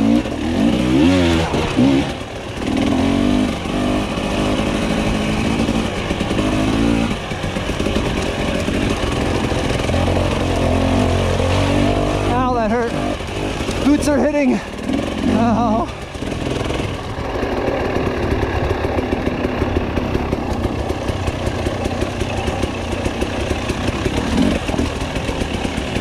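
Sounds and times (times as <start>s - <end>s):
motorcycle engine revving: 0.0s - 26.0s.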